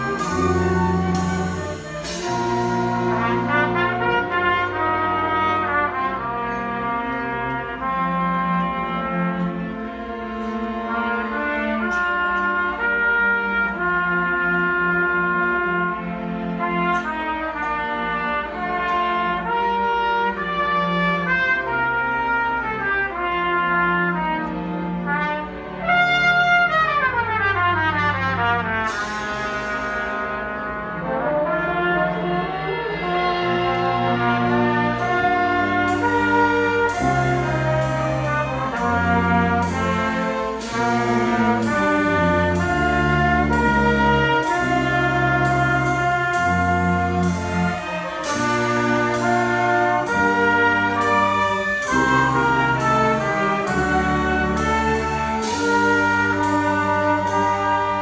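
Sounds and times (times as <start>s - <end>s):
brass playing: 0.0s - 58.0s
small orchestra playing live: 0.0s - 58.0s.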